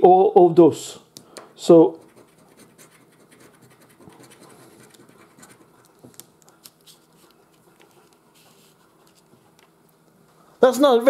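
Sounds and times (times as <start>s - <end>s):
coin scraping scratch card: 2.0s - 5.8s.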